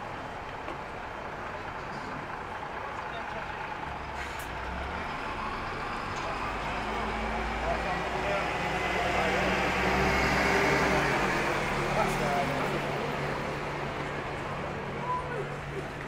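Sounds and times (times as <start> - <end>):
heavy vehicle engine rumble: 0.0 - 16.0
passers-by voices: 1.4 - 16.0.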